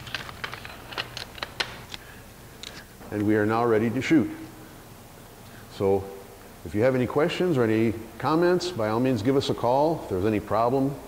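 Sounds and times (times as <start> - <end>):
rifle parts clicking and knocking: 0.0 - 2.0.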